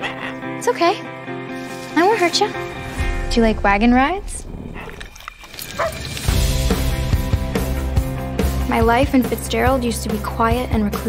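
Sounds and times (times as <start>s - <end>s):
lion cub yip: 5.8s - 6.0s.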